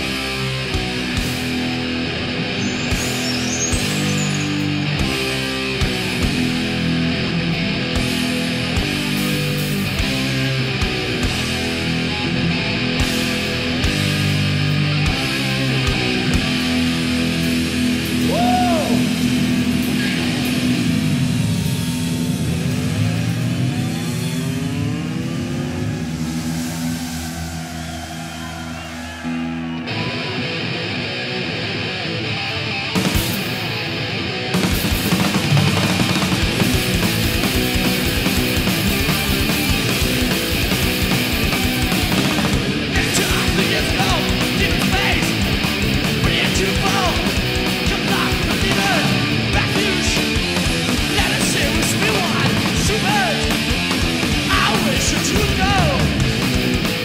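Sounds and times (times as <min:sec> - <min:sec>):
distorted guitar chords: 0:00.0 - 0:57.0
metal band playing: 0:00.0 - 0:57.0
fast drumming: 0:34.6 - 0:57.0.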